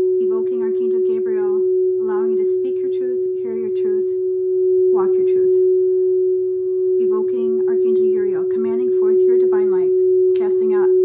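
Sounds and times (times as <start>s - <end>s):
steady pure tone: 0.0s - 11.0s.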